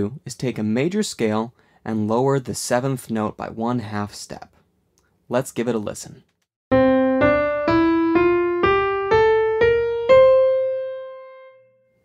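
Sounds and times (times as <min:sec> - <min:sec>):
piano playing ascending scale: 0:06.7 - 0:12.0.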